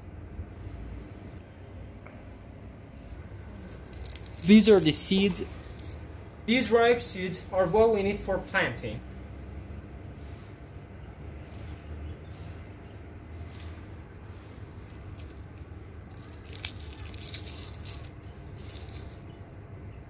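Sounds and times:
dry seed pod crackling: 3.1s - 7.1s, 11.4s - 19.5s.

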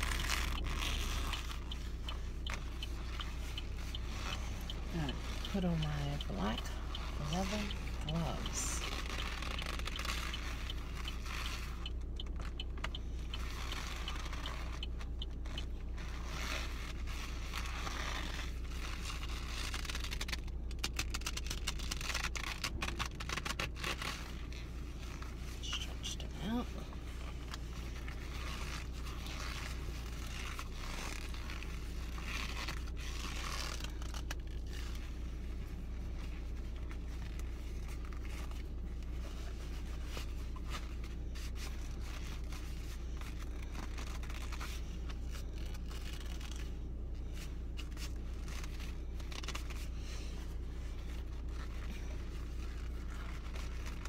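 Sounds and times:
fine crackles: 0.0s - 54.0s
leather gloves creaking and rubbing: 0.0s - 54.0s
low hum of car: 0.0s - 54.0s.

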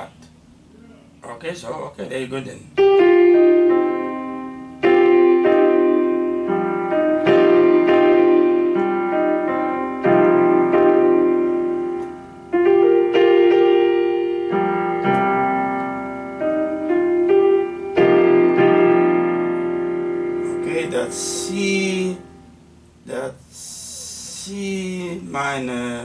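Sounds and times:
electronic piano chords: 2.8s - 23.2s.

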